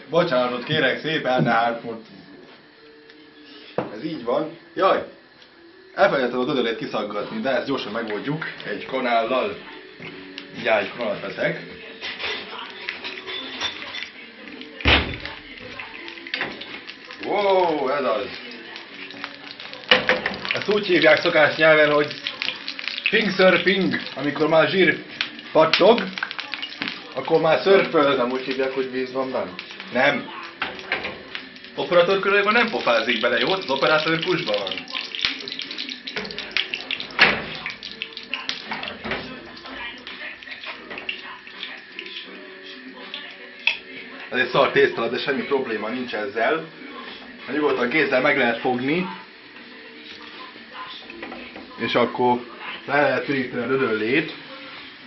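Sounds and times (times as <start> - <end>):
lard sizzling in a frying pan: 0.0 - 55.0
kitchen things clicking and knocking: 19.8 - 20.7, 30.6 - 31.4, 36.0 - 39.4.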